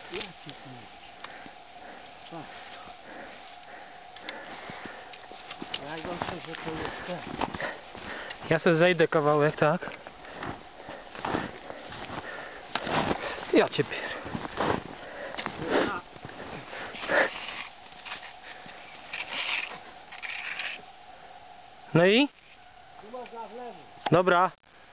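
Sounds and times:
person speaking: 5.7s - 7.8s
ski scrape: 12.8s - 20.8s.

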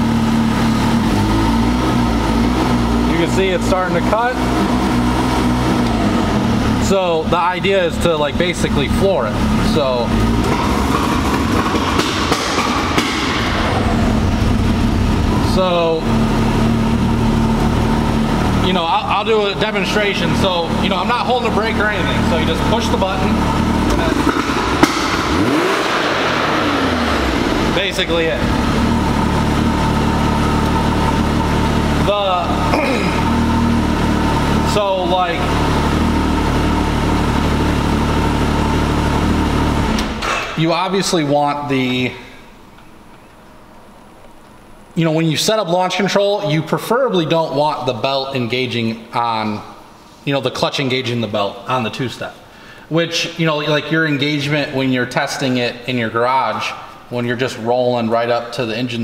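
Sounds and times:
engine running choppy and uneven: 0.0s - 42.0s.

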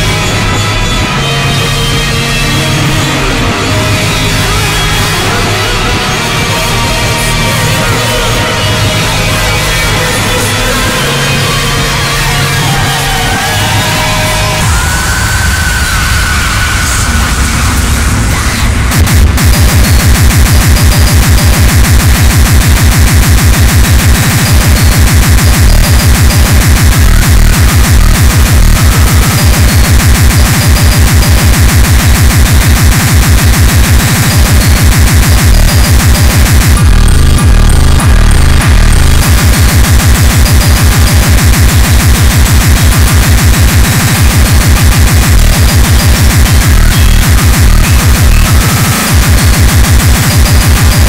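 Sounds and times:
held bass notes: 0.0s - 14.8s, 34.6s - 41.6s
distorted kick drums: 0.0s - 51.0s
harsh noise wall: 0.0s - 51.0s
speedcore electronic music: 0.0s - 51.0s.

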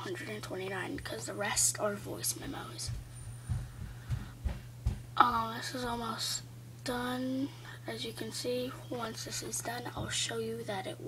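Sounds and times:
steady low hum: 0.0s - 11.0s
phone microphone handling thumps: 2.9s - 5.1s.

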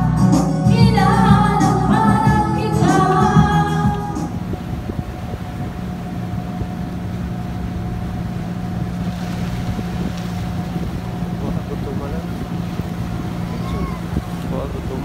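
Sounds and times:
boat engine droning: 0.0s - 15.0s.

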